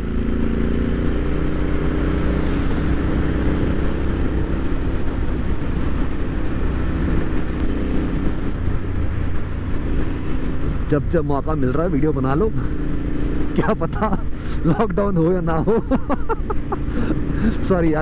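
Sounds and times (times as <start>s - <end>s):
motorcycle engine running: 0.0s - 18.0s
wind and road noise: 0.0s - 18.0s.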